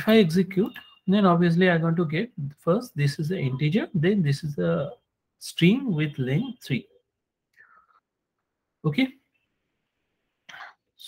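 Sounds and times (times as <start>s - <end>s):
man speaking: 0.0s - 7.0s, 8.8s - 9.2s.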